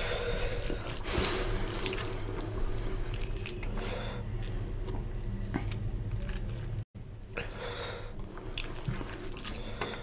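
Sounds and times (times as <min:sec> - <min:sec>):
rice mixed by hand with curry: 0:00.0 - 0:05.0, 0:08.1 - 0:10.0.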